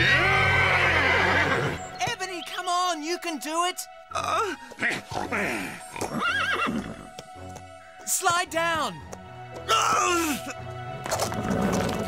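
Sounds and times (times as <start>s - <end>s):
cartoon horses neighing: 0.0s - 1.8s, 4.2s - 7.1s
background music: 0.0s - 12.0s.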